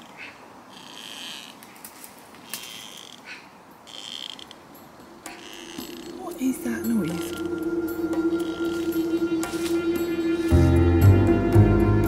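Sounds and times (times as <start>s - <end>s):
gliding squeaks: 0.0s - 1.6s, 3.8s - 10.8s
tree creaking: 0.0s - 11.0s.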